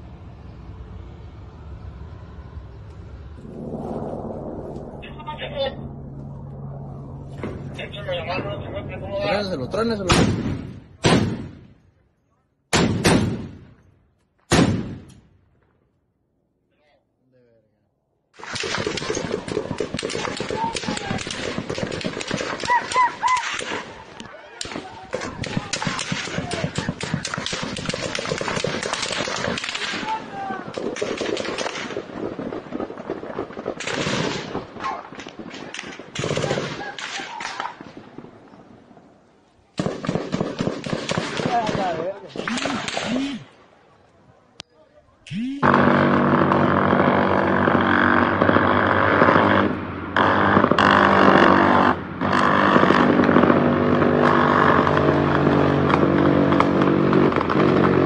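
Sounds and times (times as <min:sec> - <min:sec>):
rapid gunfire bursts: 0:18.4 - 0:24.0, 0:24.6 - 0:32.6, 0:35.6 - 0:37.5, 0:39.8 - 0:43.4.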